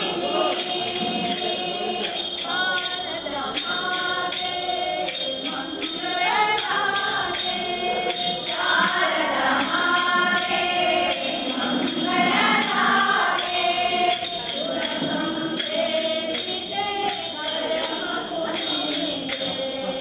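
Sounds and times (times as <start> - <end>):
steady percussive beat: 0.0 - 20.0
women singing in unison: 0.0 - 20.0.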